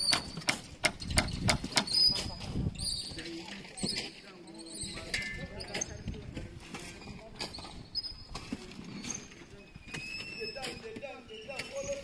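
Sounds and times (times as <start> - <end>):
outdoor background: 0.0 - 12.0.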